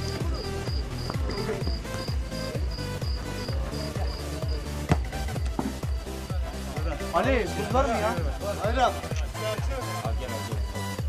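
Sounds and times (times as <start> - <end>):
electronic dance music: 0.0 - 11.0
sharp knock: 4.9 - 5.8.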